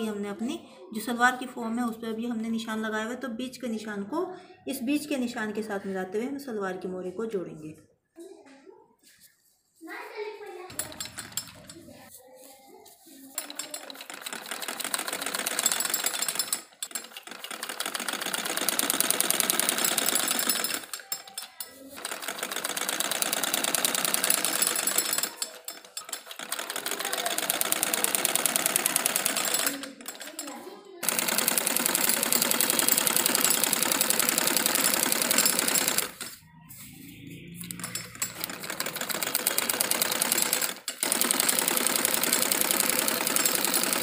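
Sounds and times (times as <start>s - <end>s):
sewing machine stitching: 10.7s - 12.0s, 13.4s - 36.4s, 37.2s - 44.0s.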